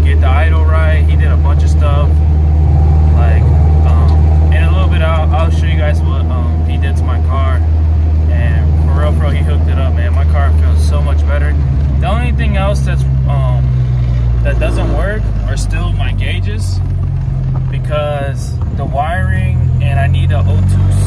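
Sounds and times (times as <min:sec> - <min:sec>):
car engine drone: 0:00.0 - 0:21.0
person talking: 0:03.2 - 0:07.6, 0:08.3 - 0:13.7, 0:14.4 - 0:16.8.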